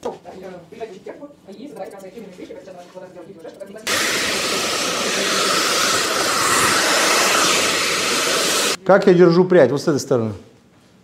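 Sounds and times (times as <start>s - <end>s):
hair dryer running: 3.9s - 8.8s.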